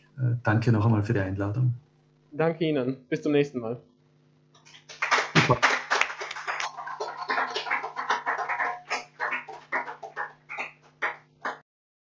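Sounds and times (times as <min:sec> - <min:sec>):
low electrical hum: 0:00.0 - 0:11.5
people clapping: 0:04.6 - 0:11.6.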